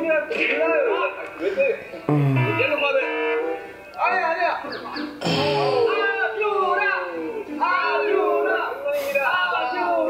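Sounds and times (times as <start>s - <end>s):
background music: 0.0s - 10.0s
person speaking: 2.1s - 2.8s.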